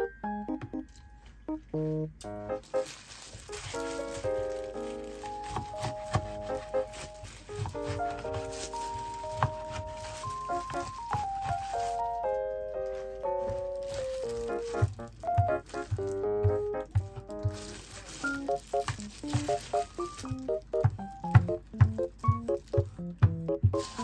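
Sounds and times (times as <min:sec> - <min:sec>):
light melodic background music: 0:00.0 - 0:24.0
knife slicing on plastic cutting board: 0:05.5 - 0:06.8.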